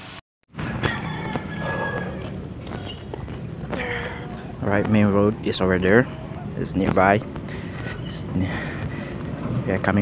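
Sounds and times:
street background noise: 0.5s - 10.0s.

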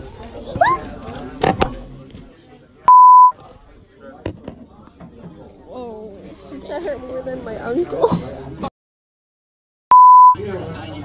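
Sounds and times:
censor bleep: 2.9s - 3.3s, 9.9s - 10.4s.

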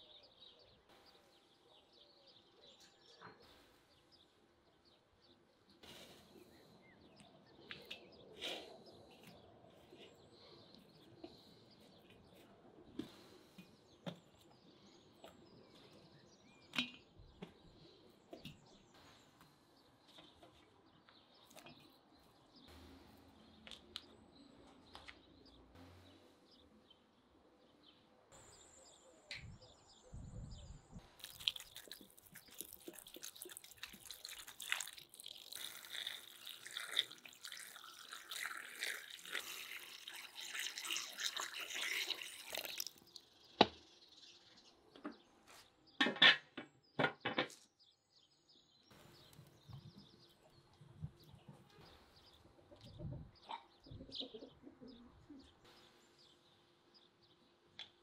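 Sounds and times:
birds chirping: 0.0s - 46.0s, 46.6s - 58.0s
water pouring into a pot: 31.2s - 43.3s.

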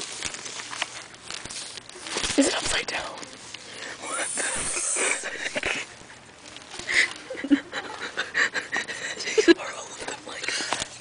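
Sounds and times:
book pages rustling: 0.0s - 3.8s, 4.4s - 7.3s, 10.1s - 11.0s.

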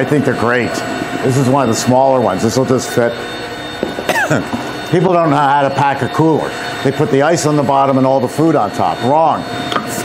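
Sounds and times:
faint machine hum: 0.0s - 10.0s
man coughing: 4.0s - 4.6s.

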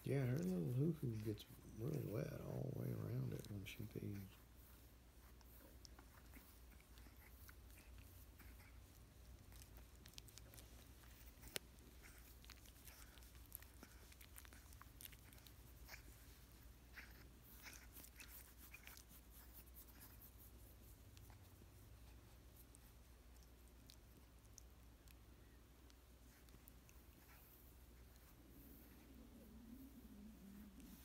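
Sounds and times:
faint rustling on blanket: 0.0s - 24.7s, 25.8s - 31.0s.

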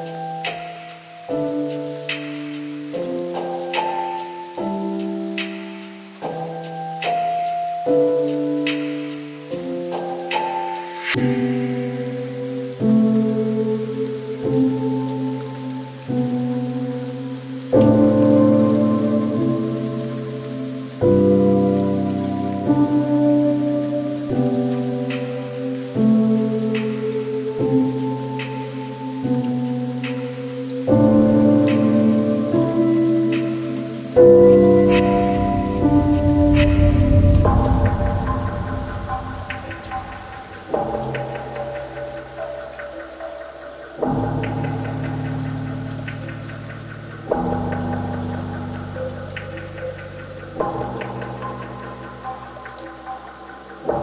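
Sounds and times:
lofi piano chords: 0.0s - 54.0s
steady rain: 0.0s - 54.0s.

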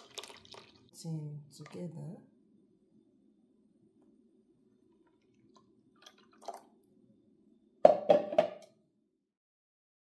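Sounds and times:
juice splashing into bowl: 0.0s - 1.0s, 4.9s - 6.9s
pitcher knocking: 7.8s - 8.6s.

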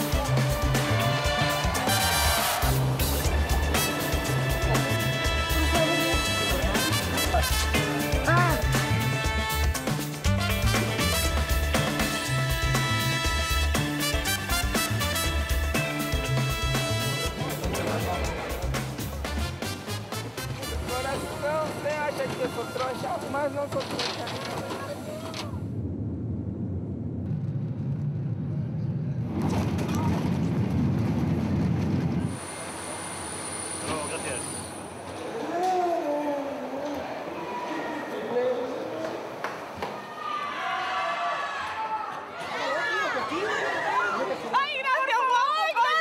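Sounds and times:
indistinct voices talking: 0.0s - 12.2s, 16.3s - 25.7s.

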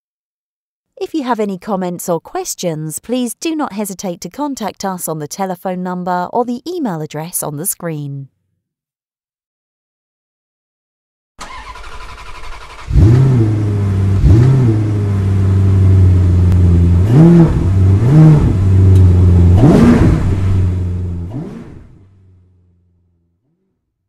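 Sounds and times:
car engine idling and revving: 11.4s - 23.8s.

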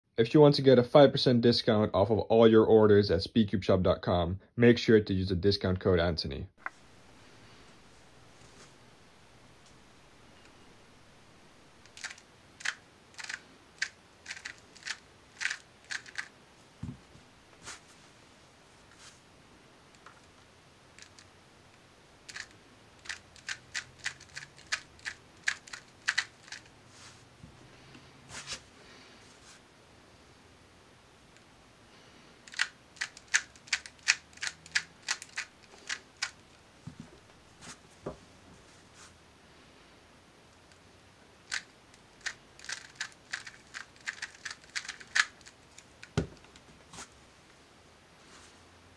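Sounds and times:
plastic clacks of speed cube turns: 11.8s - 16.3s, 21.0s - 21.3s, 22.3s - 26.7s, 32.4s - 36.5s, 41.4s - 46.7s.

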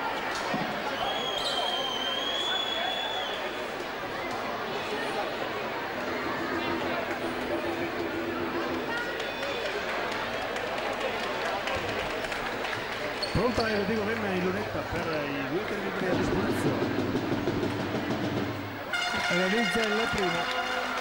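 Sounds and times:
murmur of arena crowd: 0.0s - 21.0s
voices rising: 3.1s - 17.5s.

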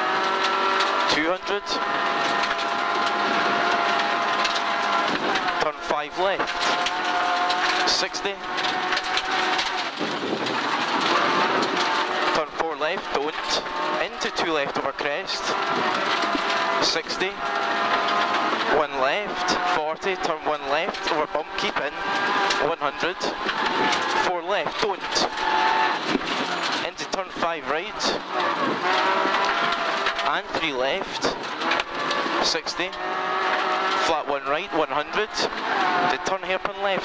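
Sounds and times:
car engine at high revs: 0.0s - 37.0s
tyres on loose gravel: 0.0s - 37.0s.

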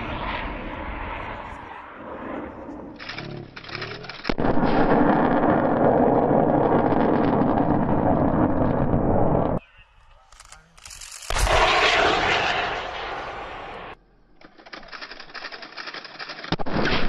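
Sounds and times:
rocket motor rushing noise: 10.9s - 14.0s
missile launch blast: 11.3s - 14.0s.

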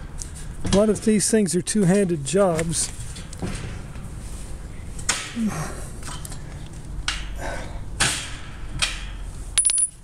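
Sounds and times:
sharp metallic clinks: 9.6s - 10.0s.

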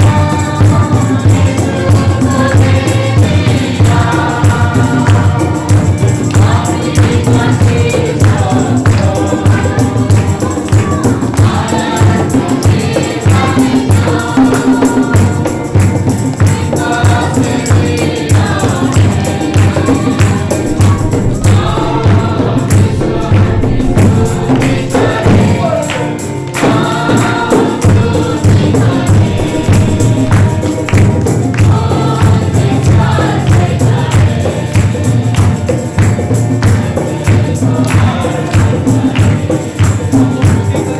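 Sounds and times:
congregation singing: 0.0s - 40.9s
percussion on a steady beat: 0.0s - 40.9s
rhythmic hand clapping: 0.0s - 40.9s
steady low beat: 19.6s - 26.2s, 27.7s - 32.7s.

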